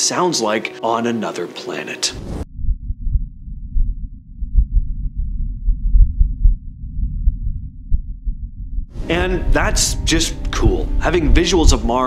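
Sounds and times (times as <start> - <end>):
muffled wind rumble: 2.1 - 12.0.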